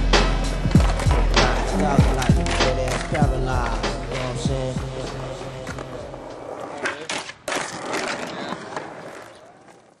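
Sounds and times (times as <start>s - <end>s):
skateboard wheels rolling on concrete: 0.1s - 10.0s
skateboard clacks: 0.7s - 10.0s.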